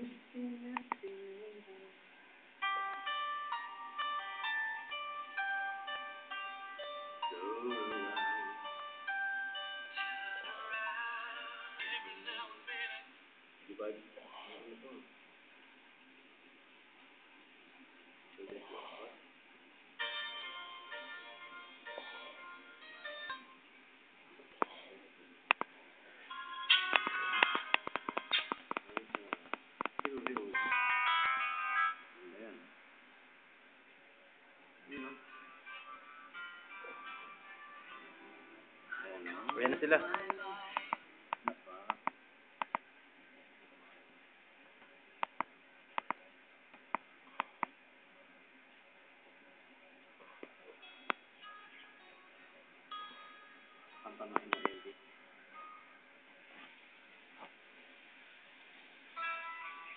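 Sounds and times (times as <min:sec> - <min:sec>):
chime-like ringing tones: 0:02.6 - 0:12.2, 0:50.8 - 0:54.2
sharp clicks and knocks: 0:26.9 - 0:30.5.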